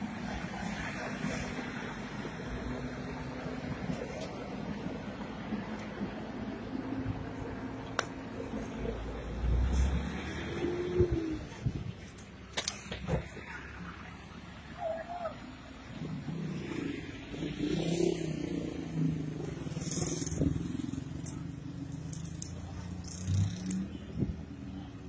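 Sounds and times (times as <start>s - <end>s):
faint voices: 0.3s - 17.2s.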